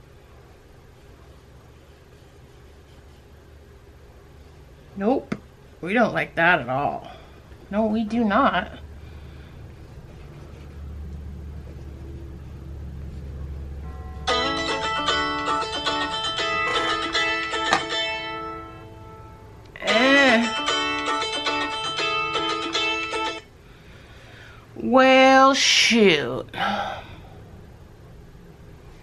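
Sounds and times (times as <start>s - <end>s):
phone timer alert melody: 13.9s - 17.6s.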